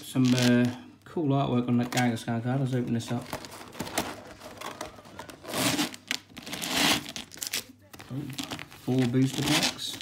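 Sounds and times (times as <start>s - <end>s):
plastic packaging crinkling: 0.0s - 0.8s, 1.8s - 10.0s
plastic crackling bursts: 3.0s - 10.0s.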